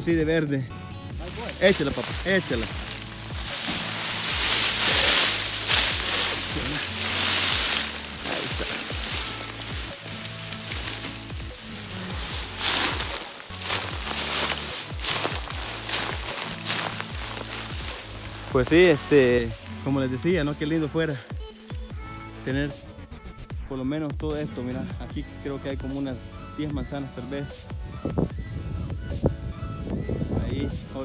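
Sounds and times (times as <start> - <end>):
background music with bass: 0.0 - 31.0
dry leaves crackling and rustling: 1.1 - 21.8.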